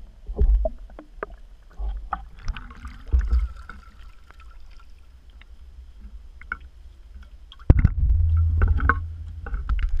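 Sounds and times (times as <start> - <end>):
low muffled rumble: 7.7 - 10.0.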